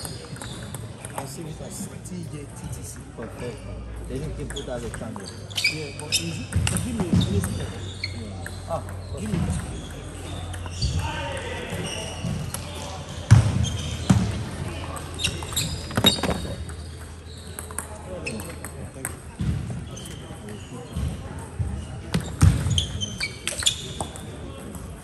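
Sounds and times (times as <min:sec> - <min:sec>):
murmur of voices: 0:00.0 - 0:25.0
table tennis balls clicking: 0:15.3 - 0:19.2.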